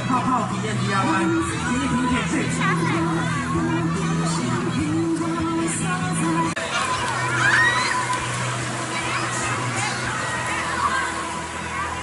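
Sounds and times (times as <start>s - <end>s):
music playing: 0.0s - 12.0s
children shouting and squealing: 0.6s - 5.2s, 6.2s - 12.0s
water splashing: 4.1s - 12.0s.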